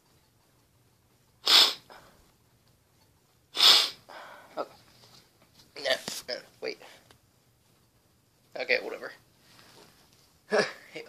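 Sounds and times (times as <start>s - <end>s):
man sneezing: 1.4s - 1.9s, 3.6s - 4.1s
short breath: 3.7s - 4.6s.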